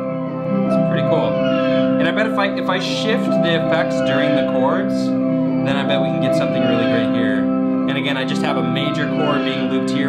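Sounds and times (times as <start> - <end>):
shovel guitar chords through effects: 0.0 - 10.0
swooping pitch glides: 0.0 - 10.0.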